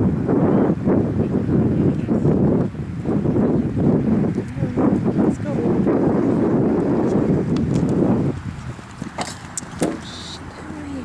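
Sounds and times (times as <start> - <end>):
wind buffeting microphone: 0.0 - 11.0
sharp knocks: 9.1 - 10.1.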